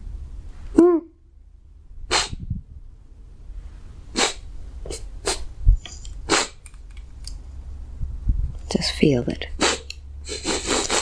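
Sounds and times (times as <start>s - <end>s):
man crying and sniffing: 9.6s - 11.0s.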